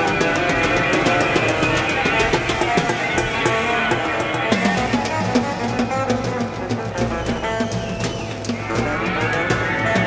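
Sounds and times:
drums with cymbal strokes: 0:00.0 - 0:10.0.

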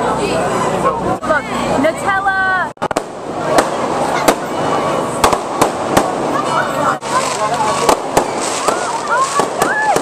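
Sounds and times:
fireworks bangs: 0:02.8 - 0:10.0
fireworks crackle: 0:02.8 - 0:10.0.

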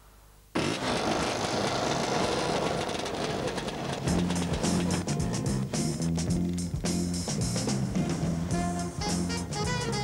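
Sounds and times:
two-stroke motor scooters riding past: 0:00.6 - 0:05.1.

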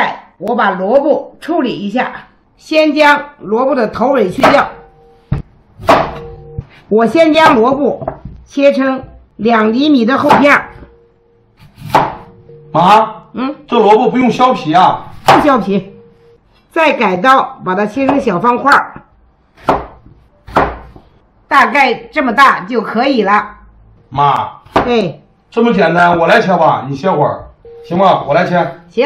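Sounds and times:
cleaver chopping on wooden board: 0:05.3 - 0:06.2, 0:11.8 - 0:12.2, 0:19.6 - 0:21.0.

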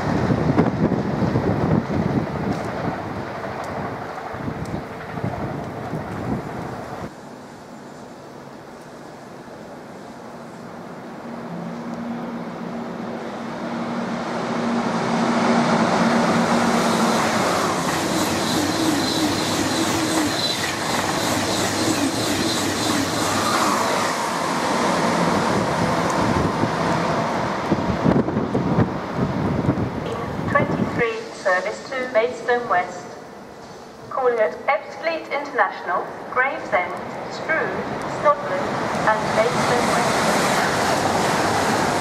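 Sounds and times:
high-speed train passing: 0:00.0 - 0:42.0.

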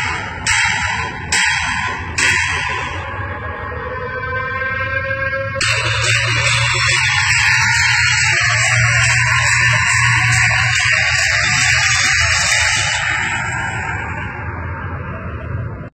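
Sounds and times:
low hum: 0:00.0 - 0:15.9.

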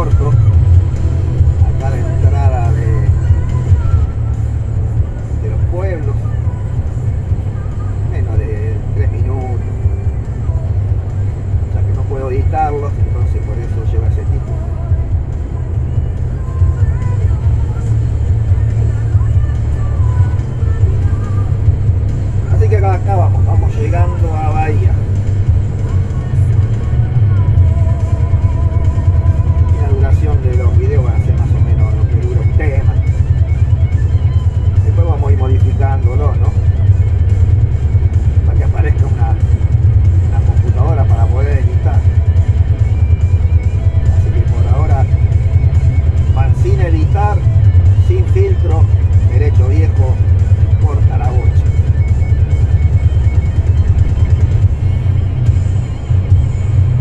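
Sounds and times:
music with singing voice: 0:00.0 - 0:57.0
truck engine and road rumble: 0:00.0 - 0:57.0.

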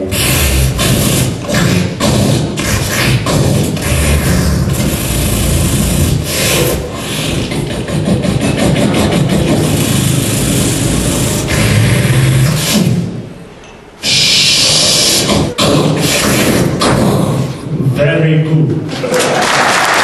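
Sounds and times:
rasping electric buzz: 0:00.0 - 0:07.4.

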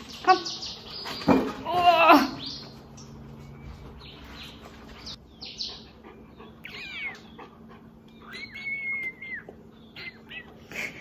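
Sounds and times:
small dog whining: 0:06.6 - 0:10.6.

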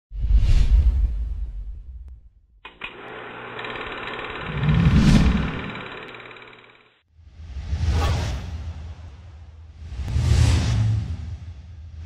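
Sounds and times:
steady buzzing drone: 0:02.6 - 0:07.0
whoosh: 0:07.3 - 0:12.0.

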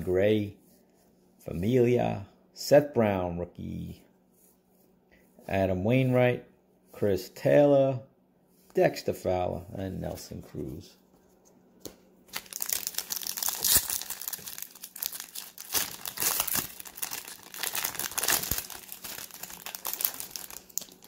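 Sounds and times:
foil wrapper crinkling: 0:12.3 - 0:21.0.

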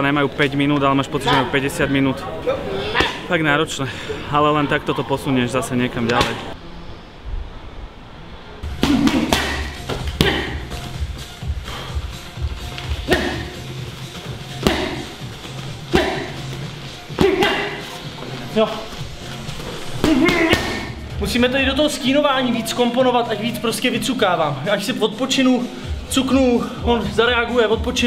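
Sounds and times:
background music with low beat: 0:08.6 - 0:28.0
gloved punches hitting pads: 0:08.7 - 0:10.7, 0:13.0 - 0:13.6, 0:14.6 - 0:15.1, 0:15.9 - 0:16.3, 0:17.1 - 0:17.9, 0:20.0 - 0:20.9.

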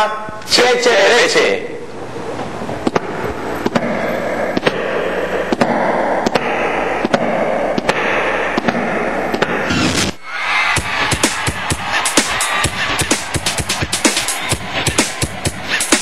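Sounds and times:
crackling noise bed: 0:01.8 - 0:10.2
sharp rhythmic clicks: 0:04.6 - 0:09.7.

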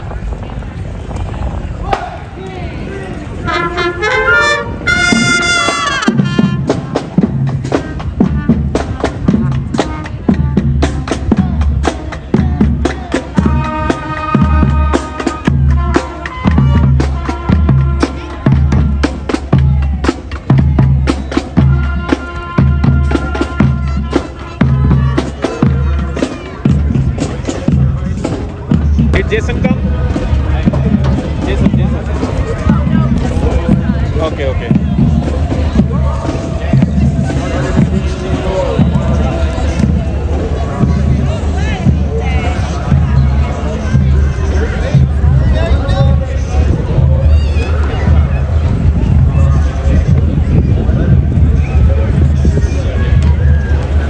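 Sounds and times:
brass and woodwinds holding notes: 0:03.3 - 0:20.2, 0:20.8 - 0:30.2
drums beating marching rhythm: 0:03.5 - 0:54.0.

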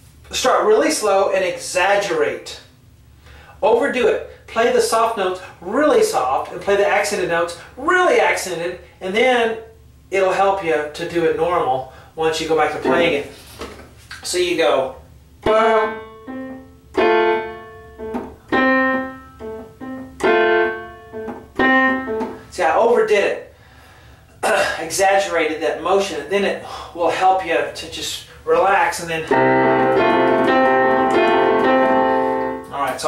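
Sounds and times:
digital piano playing accented notes: 0:12.8 - 0:13.3, 0:15.4 - 0:22.4, 0:29.3 - 0:32.8.

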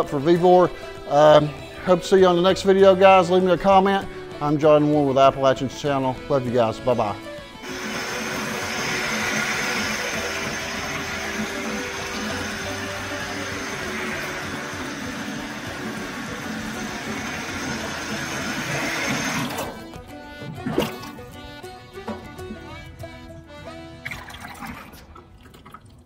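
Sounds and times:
faucet water splashing into sink: 0:07.6 - 0:19.7, 0:24.1 - 0:26.0.

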